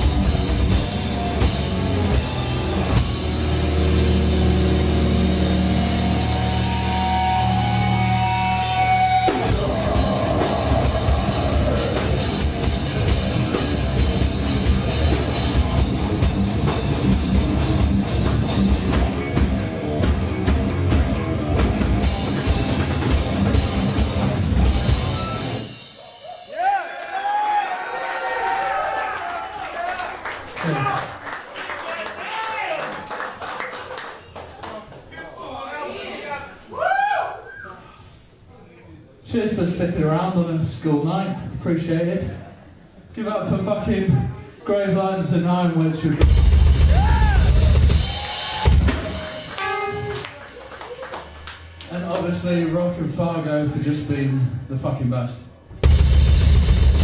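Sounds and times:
audience shouting and cheering: 0.0 - 17.1, 22.1 - 34.1, 35.5 - 37.8, 46.0 - 52.3
live heavy metal band: 0.0 - 26.0, 46.2 - 50.1, 55.8 - 57.0.

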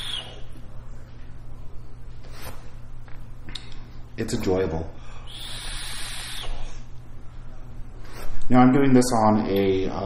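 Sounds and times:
airy hiss of vape draw: 5.3 - 6.6.

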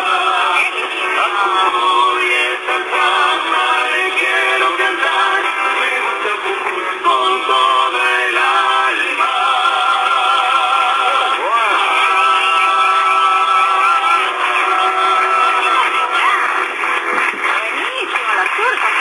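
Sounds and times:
men singing in harmony: 0.0 - 16.4
acoustic guitar: 0.0 - 19.0
people talking: 10.4 - 19.0.

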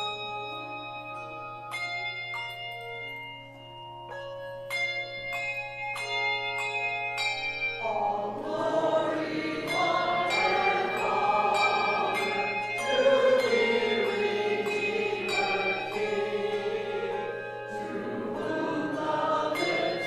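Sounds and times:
choir and congregation singing: 7.8 - 20.0.

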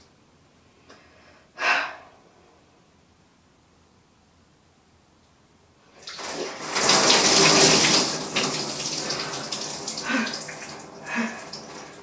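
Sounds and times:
water dripping: 6.0 - 12.0
water splashing on shower floor: 6.0 - 12.0.

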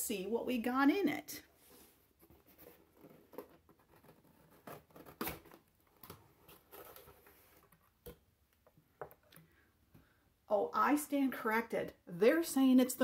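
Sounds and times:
cardboard rustling: 1.6 - 8.2.

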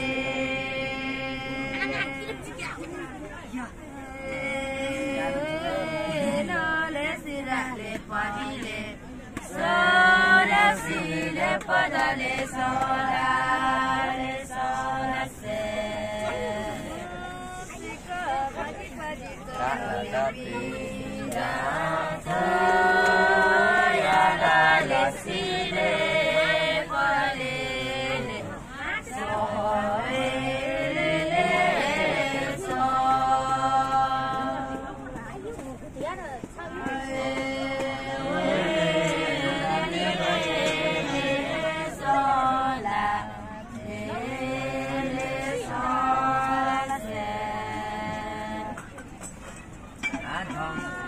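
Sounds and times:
group singing without instruments: 0.0 - 2.9, 3.9 - 35.3, 36.6 - 49.4, 50.0 - 51.0.

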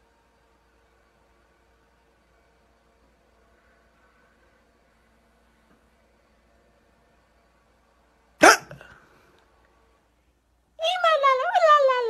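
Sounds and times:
sudden vocal yelp: 8.4 - 8.9.

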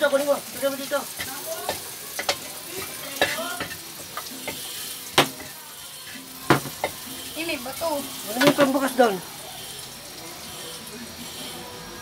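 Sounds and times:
cabbage sizzling in a pan: 0.0 - 12.0
metal spatula scraping pan: 1.0 - 9.0.

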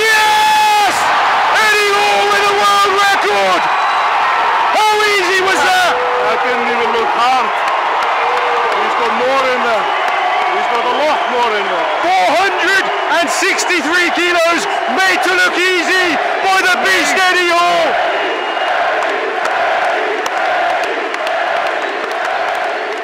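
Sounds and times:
men yelling and cheering: 0.0 - 22.9
crowd noise: 0.0 - 23.0.

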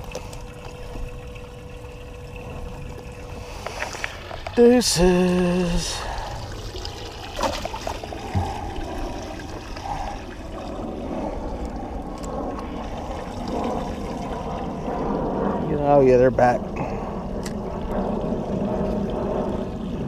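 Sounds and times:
water trickling and pouring: 0.0 - 20.0.

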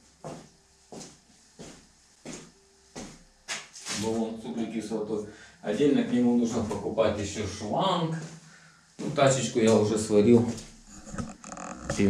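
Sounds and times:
footsteps on hard floor: 0.2 - 4.0.

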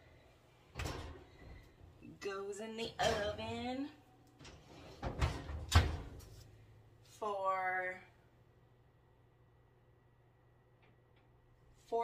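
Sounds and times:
metal clunks of oven door and rack: 4.4 - 6.2.

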